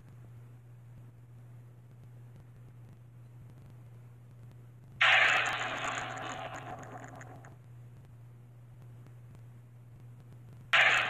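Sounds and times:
cartoon noisy rush: 5.0 - 7.5, 10.8 - 11.0.

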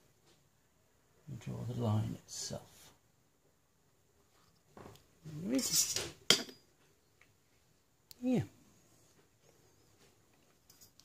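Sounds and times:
metallic clink: 10.6 - 11.0.

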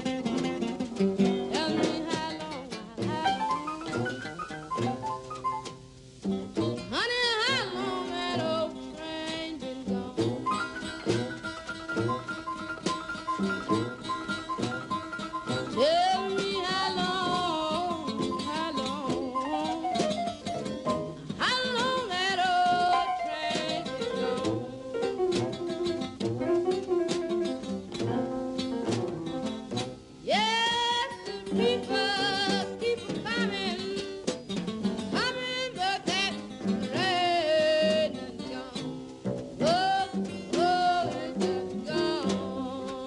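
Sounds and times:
plucked guitar accompaniment: 0.0 - 43.0
woman singing wavering phrases: 15.8 - 20.0, 21.4 - 24.5, 39.6 - 43.0.

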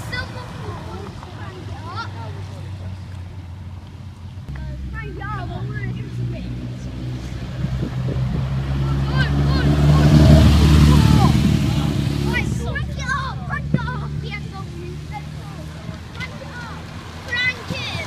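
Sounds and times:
sports car engine passing: 0.0 - 18.0.

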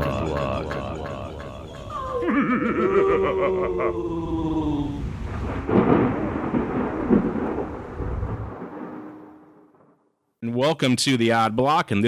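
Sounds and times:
echoed voice effect: 0.0 - 5.1
thunder-like rumble: 4.7 - 9.9.

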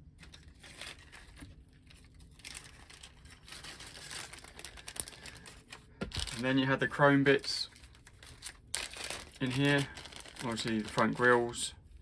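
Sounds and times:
plastic bag crinkling: 0.0 - 11.7.

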